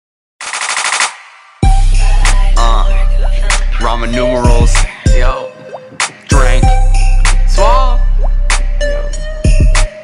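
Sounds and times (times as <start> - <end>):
trap beat with deep bass: 1.6 - 10.0.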